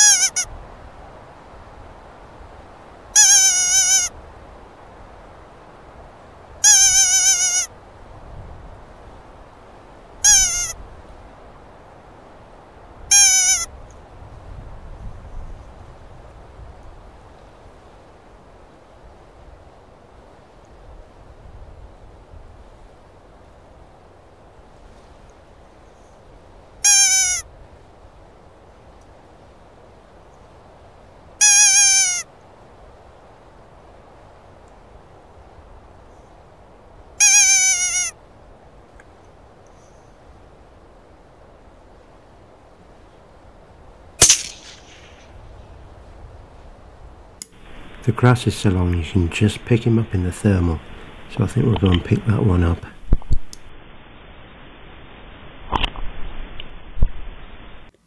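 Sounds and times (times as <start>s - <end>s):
high wavering animal calls: 0.0s - 0.5s, 3.2s - 4.1s, 6.6s - 7.7s, 10.2s - 10.8s, 13.1s - 13.7s, 26.8s - 27.5s, 31.4s - 32.3s, 37.2s - 38.2s
rifle shot with echo: 44.2s - 45.3s.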